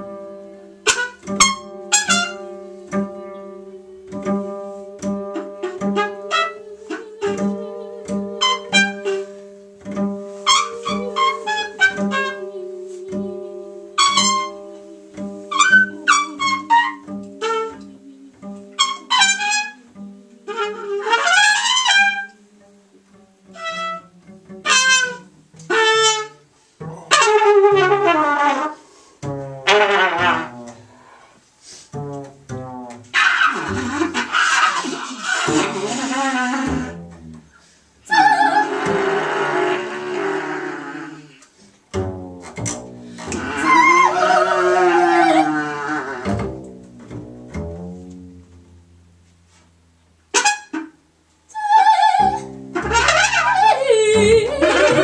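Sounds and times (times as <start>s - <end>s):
double bass: 0.0s - 55.0s
muted trumpet: 0.8s - 22.4s, 23.5s - 29.0s, 29.6s - 31.2s, 31.9s - 37.1s, 38.1s - 41.4s, 42.6s - 46.5s, 50.3s - 51.0s, 51.6s - 55.0s
breathy hissing: 28.7s - 29.2s, 30.8s - 32.1s
person vocalizing: 43.2s - 46.3s, 51.6s - 55.0s.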